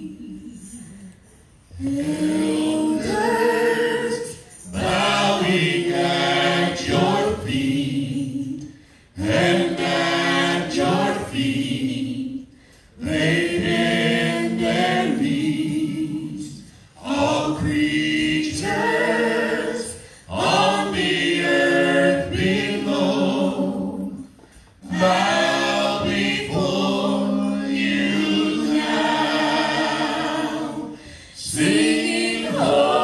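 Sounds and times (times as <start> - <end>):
group singing a worship song: 0.0 - 33.0.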